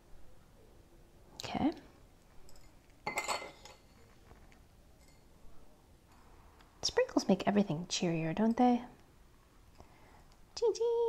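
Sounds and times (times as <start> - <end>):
metal spoon clinking on ceramic dish: 2.5 - 4.1.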